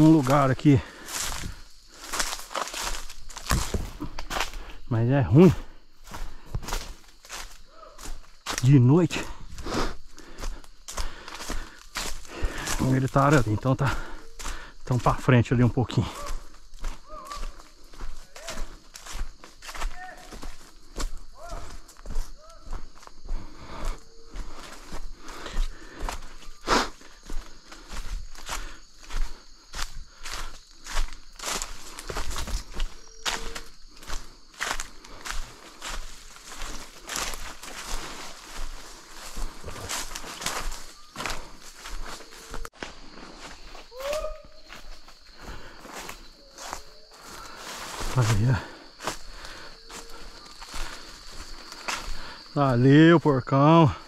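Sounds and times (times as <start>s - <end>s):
footsteps crunching through dry leaves: 0.0s - 52.9s.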